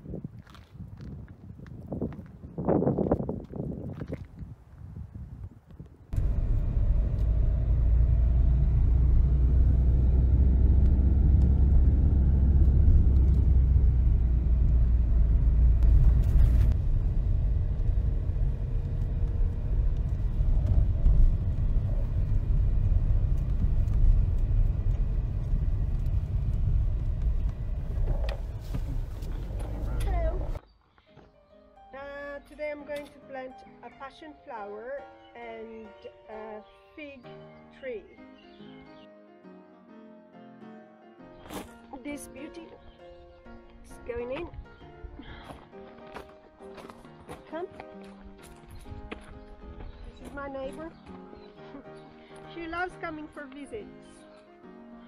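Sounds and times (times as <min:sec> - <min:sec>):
car engine and road noise: 0:06.1 - 0:30.6.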